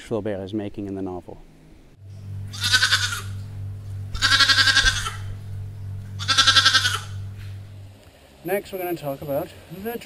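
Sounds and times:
steady low hum: 0.0s - 10.0s
animal calling: 2.5s - 3.5s, 4.1s - 5.4s, 6.1s - 7.3s.

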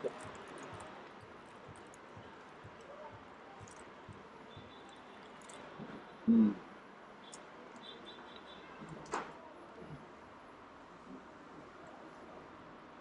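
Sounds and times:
small clicks and rustles: 3.6s - 6.1s
man's short vocal sound: 6.3s - 6.7s.

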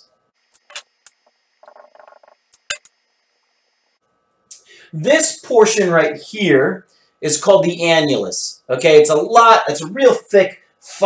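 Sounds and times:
marker squeaking on whiteboard: 0.6s - 2.4s.

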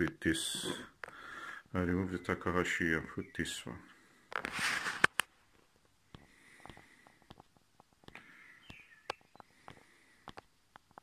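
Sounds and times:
eyepieces clicking: 6.1s - 11.0s.

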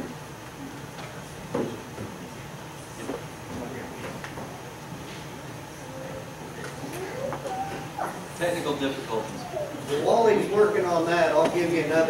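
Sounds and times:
voices murmuring: 5.6s - 12.0s.

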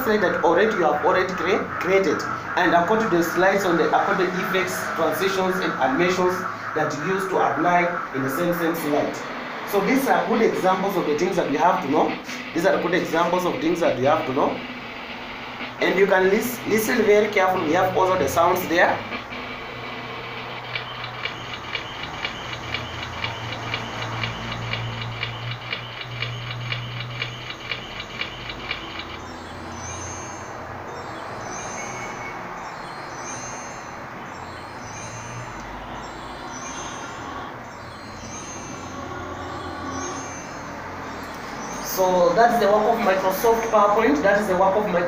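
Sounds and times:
fast even ticking: 0.0s - 30.6s.

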